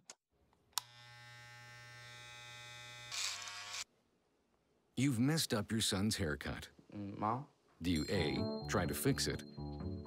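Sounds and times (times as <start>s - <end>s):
electric hair clippers buzzing: 0.8s - 3.9s.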